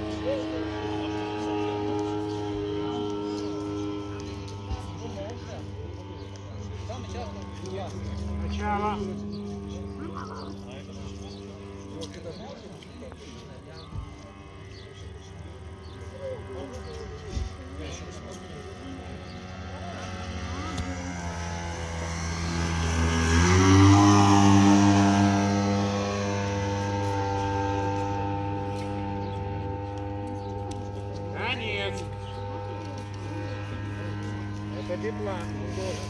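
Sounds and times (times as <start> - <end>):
model airplane engine droning: 0.0 - 36.0.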